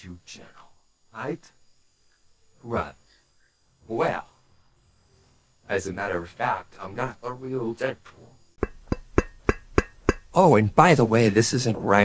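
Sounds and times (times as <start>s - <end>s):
sharp percussive knocks: 8.6s - 10.4s.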